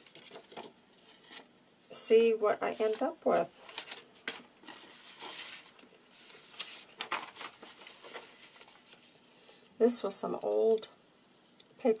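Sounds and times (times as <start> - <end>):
paper sheets rustling: 0.0 - 1.5, 2.7 - 9.2.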